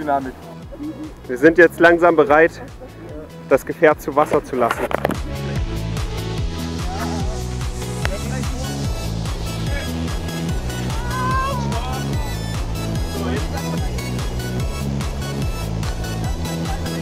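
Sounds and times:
electronic dance music: 0:05.4 - 0:17.0.

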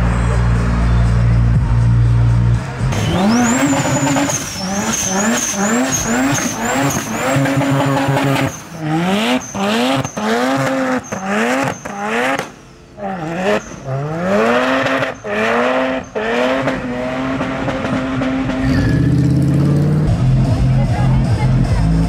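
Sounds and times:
car engine revving hard: 0:02.9 - 0:22.0.

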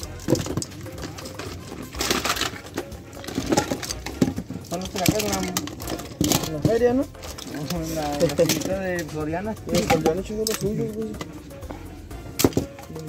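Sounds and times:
plastic toys clattering: 0:00.0 - 0:13.0.

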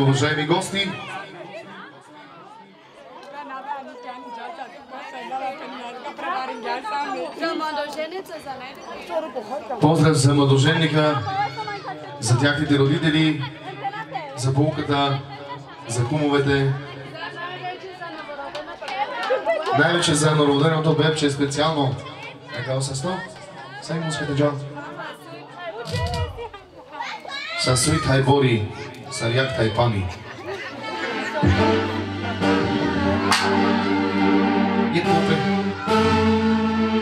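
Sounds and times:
overlapping chatter: 0:00.0 - 0:37.0.

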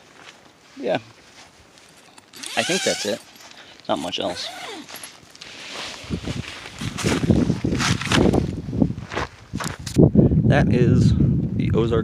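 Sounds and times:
rustling: 0:00.0 - 0:09.8
footsteps: 0:01.1 - 0:10.0.

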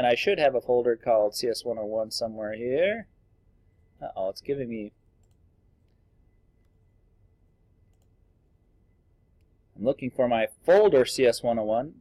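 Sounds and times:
computer mouse clicks: 0:05.2 - 0:06.0, 0:07.9 - 0:08.2.

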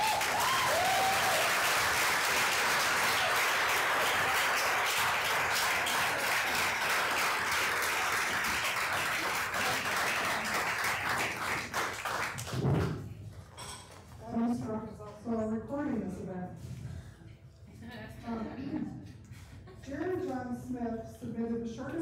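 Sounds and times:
audience applauding: 0:00.0 - 0:12.6.

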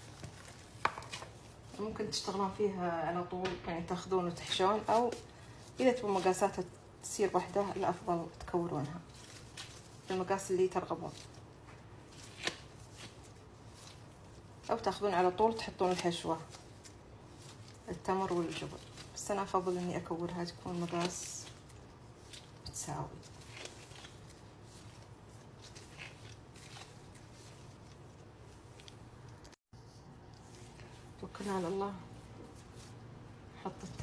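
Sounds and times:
low steady hum: 0:00.0 - 0:34.0
hands rolling dough: 0:03.9 - 0:34.0.

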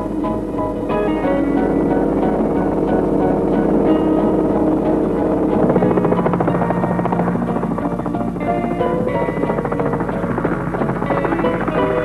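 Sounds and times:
background music: 0:00.0 - 0:12.0
helicopter rotor and engine: 0:00.0 - 0:12.0.

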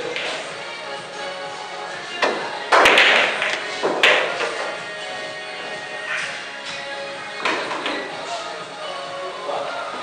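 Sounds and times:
pool balls clicking: 0:00.0 - 0:00.6, 0:02.1 - 0:04.8, 0:07.4 - 0:08.2
background music: 0:00.0 - 0:10.0.

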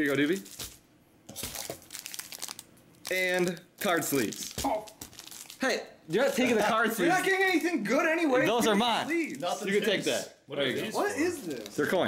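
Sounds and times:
plastic packaging crinkling: 0:00.0 - 0:05.7, 0:11.2 - 0:12.0.

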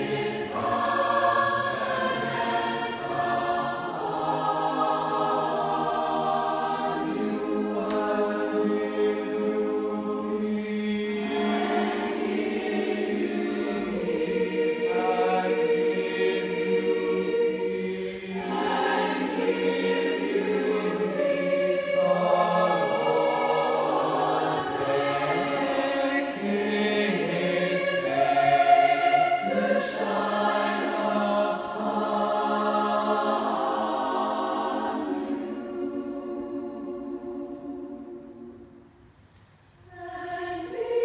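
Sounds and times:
choir singing a cappella: 0:00.0 - 0:39.2, 0:39.8 - 0:41.0.

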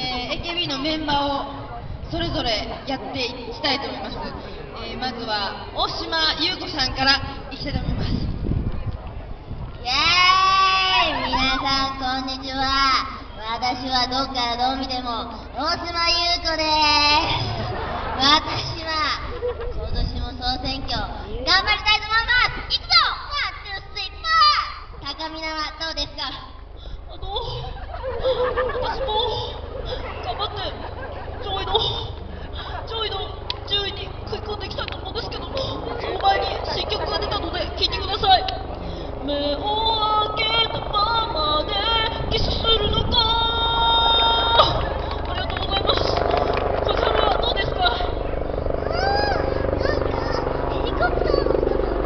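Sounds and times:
woman calling over loudspeaker: 0:00.0 - 0:08.2, 0:28.4 - 0:52.0
crowd voices: 0:00.0 - 0:25.7, 0:26.5 - 0:52.0
crowd clapping: 0:44.8 - 0:47.5.

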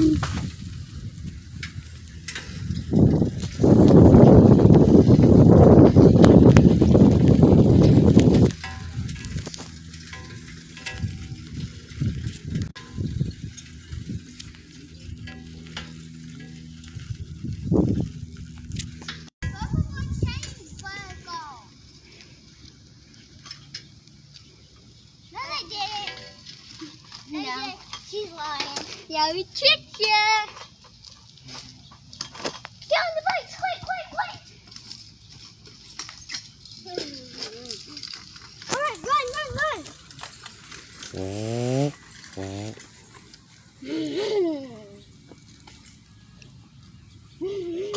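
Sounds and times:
bicycle rumbling and knocks: 0:00.0 - 0:47.9
children calling out: 0:36.8 - 0:40.0.

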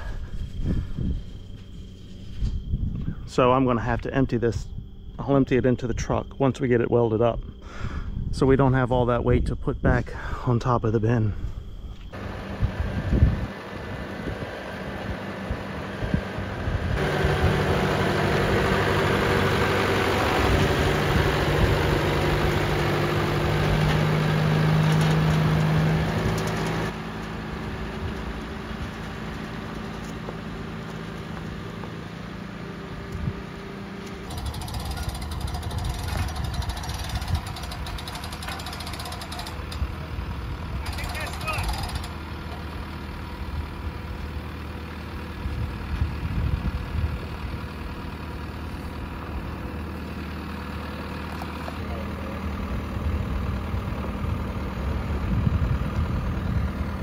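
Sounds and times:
tractor diesel engine running: 0:00.0 - 0:57.0.

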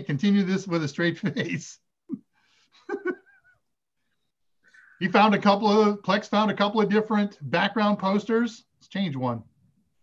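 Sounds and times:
man's stifled laugh: 0:02.8 - 0:03.7
faint squeaky breath: 0:04.0 - 0:05.0.

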